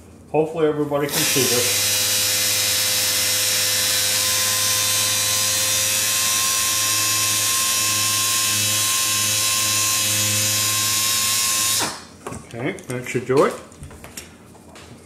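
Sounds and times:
air polisher hissing and humming: 1.1 - 12.0.

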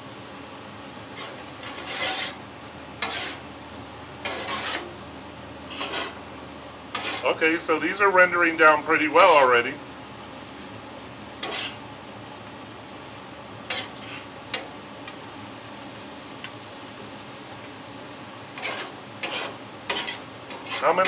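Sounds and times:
mushrooms sizzling on a griddle: 0.0 - 21.0
metal spatula scraping a griddle: 1.1 - 3.5, 4.2 - 5.0, 5.7 - 6.2, 6.9 - 7.4, 8.6 - 9.6, 11.4 - 11.9, 13.6 - 14.7, 18.5 - 21.0.

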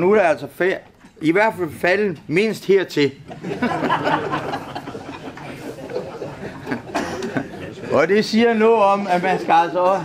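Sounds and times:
people laughing: 3.3 - 8.2.

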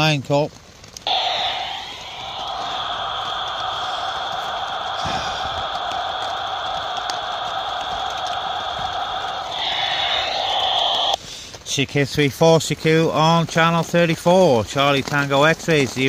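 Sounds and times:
radio static hiss: 1.1 - 11.3.

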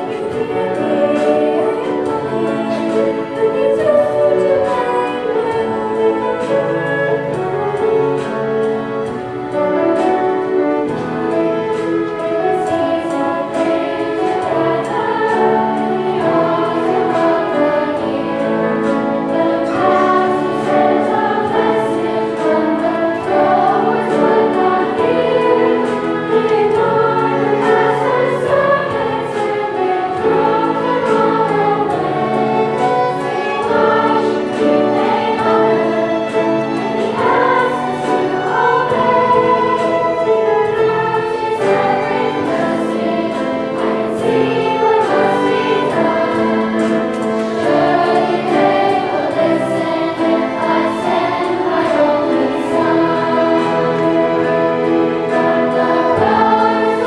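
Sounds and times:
children's choir singing: 0.0 - 57.0
instrumental accompaniment: 0.0 - 57.0.

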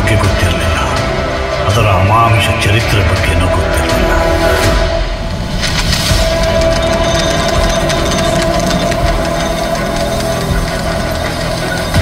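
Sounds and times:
rumbling engine-like drone: 3.1 - 12.0.

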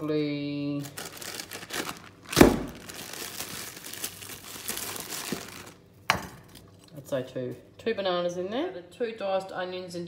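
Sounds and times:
plastic bag crinkling: 0.7 - 5.9.

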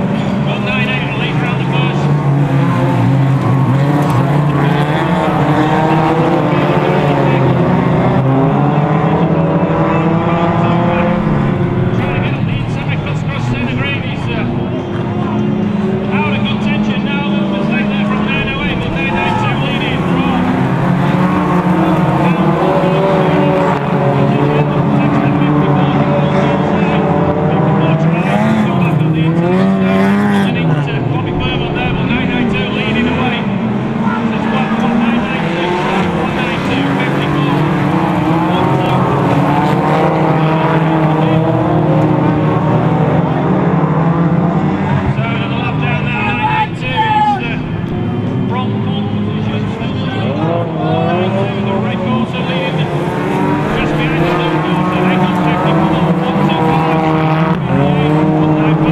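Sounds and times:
racing car engines revving: 0.0 - 58.9.

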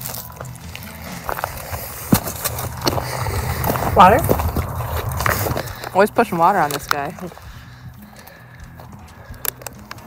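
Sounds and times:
footsteps crunching on stony ground: 0.0 - 10.0
low rumble: 0.6 - 8.6.

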